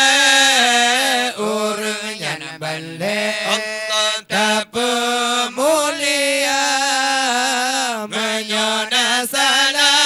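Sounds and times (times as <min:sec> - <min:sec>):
men chanting: 0:00.0 - 0:10.0.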